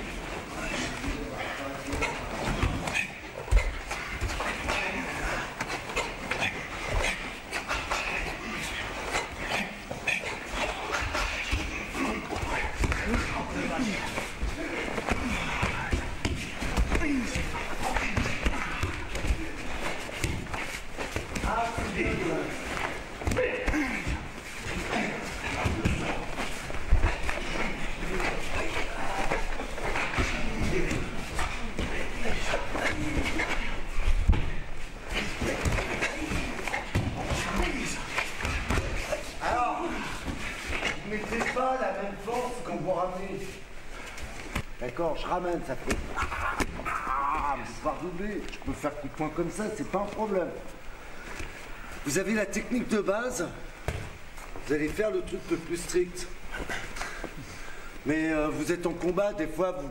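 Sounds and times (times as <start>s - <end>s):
indistinct voices and shouts: 46.1s - 48.2s.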